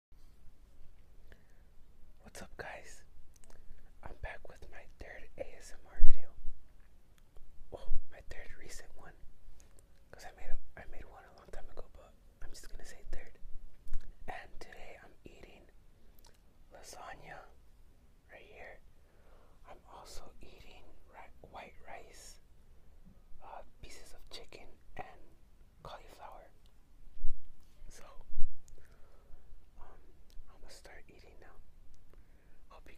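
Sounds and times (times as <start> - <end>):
man whispering: 2.2 - 6.5, 7.7 - 9.2, 10.1 - 13.4, 14.0 - 17.6, 18.3 - 18.8, 19.6 - 22.4, 23.4 - 26.7, 27.6 - 28.4, 29.6 - 32.9.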